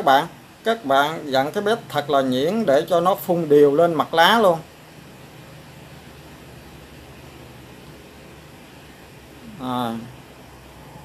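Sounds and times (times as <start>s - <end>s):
faint low hum: 0.0s - 11.0s
steady low hiss: 0.0s - 11.0s.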